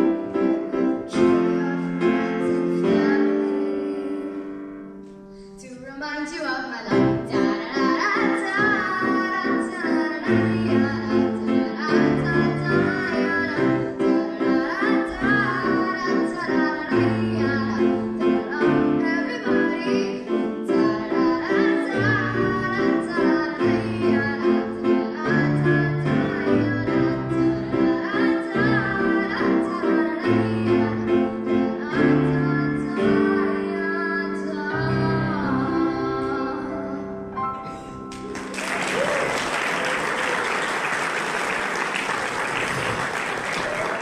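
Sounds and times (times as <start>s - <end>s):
person singing into microphone: 0.0s - 4.8s, 5.6s - 37.9s
piano playing chords: 0.0s - 39.6s.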